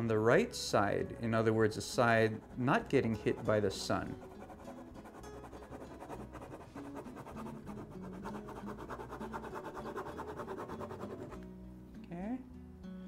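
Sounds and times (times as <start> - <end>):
soft background music: 0.0 - 13.0
pen nib scratching on paper: 3.2 - 11.4.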